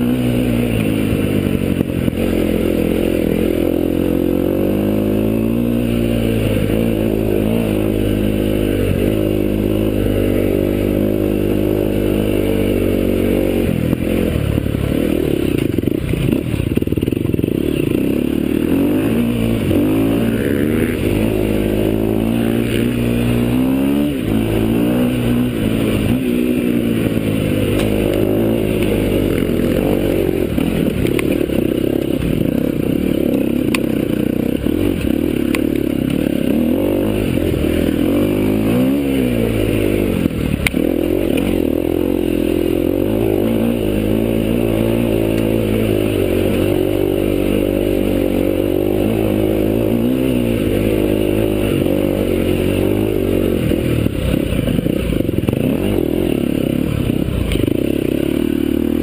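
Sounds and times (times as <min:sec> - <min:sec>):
motorcycle engine revving: 0:00.0 - 0:59.0.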